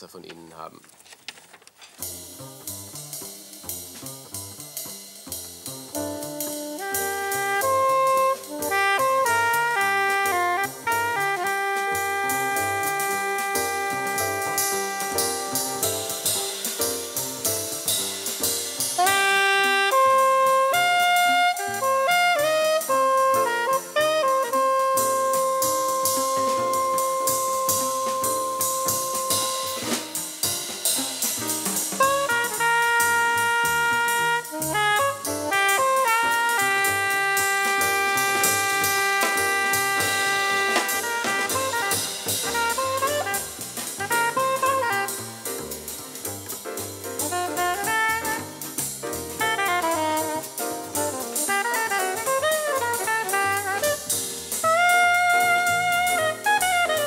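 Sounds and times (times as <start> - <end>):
drum kit with cymbals: 1.8 - 57.0
double bass: 2.0 - 57.0
piano: 2.0 - 57.0
soprano saxophone melody: 6.1 - 16.3, 19.0 - 30.1, 32.0 - 45.8, 47.2 - 57.0.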